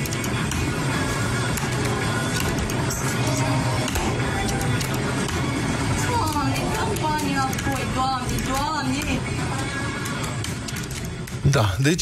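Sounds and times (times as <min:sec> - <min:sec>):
electronic slot machine music: 0:00.0 - 0:12.0
noisy room background: 0:00.0 - 0:12.0.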